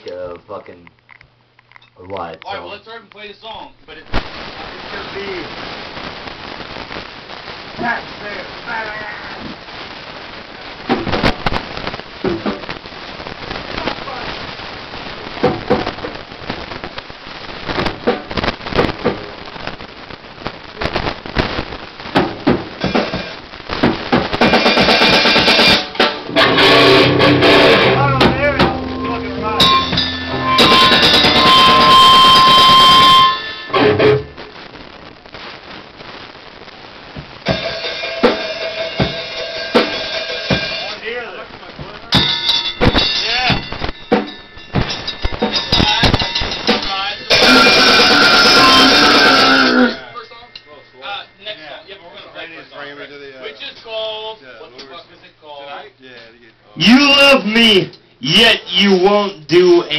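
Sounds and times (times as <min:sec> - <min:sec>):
electric guitar: 0:06.1 - 0:34.7, 0:37.1 - 0:41.0, 0:41.8 - 0:50.7
fast drum kit: 0:10.8 - 0:12.8, 0:15.3 - 0:16.2, 0:17.8 - 0:19.4, 0:22.1 - 0:34.4, 0:37.2 - 0:41.1, 0:41.7 - 0:49.9
shouted vocals: 0:47.3 - 0:50.1, 0:56.8 - 0:59.9.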